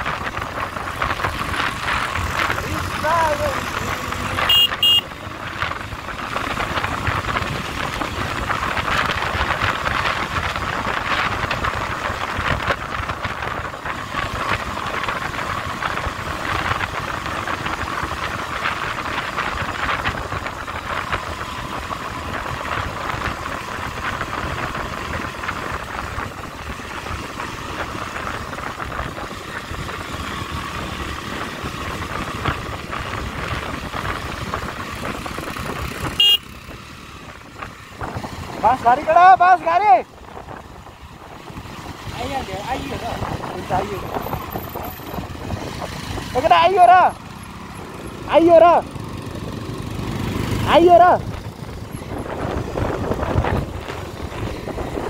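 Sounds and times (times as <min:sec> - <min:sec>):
motorcycle engine running: 0:00.0 - 0:55.0
short loud beeps: 0:04.5 - 0:05.1.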